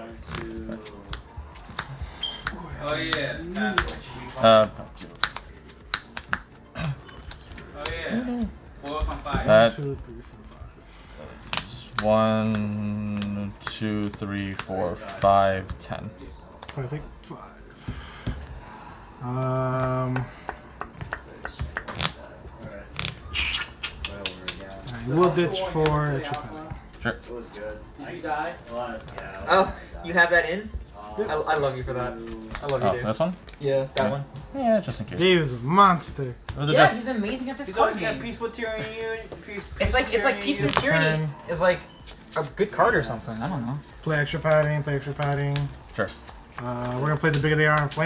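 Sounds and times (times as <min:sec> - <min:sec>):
trading cards clicking and tapping: 0:00.2 - 0:10.0, 0:11.3 - 0:17.1, 0:19.7 - 0:37.4, 0:44.1 - 0:48.0
cards clicking and tapping: 0:04.6 - 0:08.0, 0:11.4 - 0:16.0, 0:24.0 - 0:26.8, 0:32.2 - 0:34.2.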